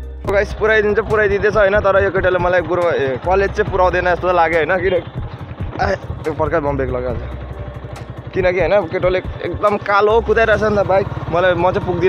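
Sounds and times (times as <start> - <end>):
man talking: 0.3 - 5.1, 5.8 - 7.2, 8.4 - 12.0.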